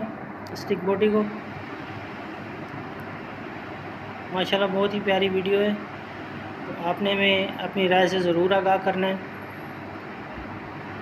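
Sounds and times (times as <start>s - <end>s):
machine running with low hum: 0.0s - 11.0s.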